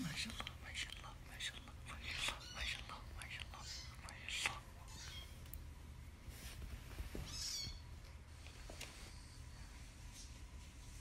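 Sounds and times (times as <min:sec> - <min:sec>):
person whispering: 0:00.0 - 0:05.0.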